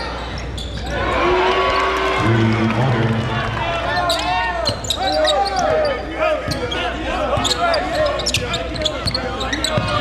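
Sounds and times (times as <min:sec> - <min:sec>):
sneakers squeaking on hardwood: 0:00.2 - 0:00.9, 0:04.0 - 0:10.0.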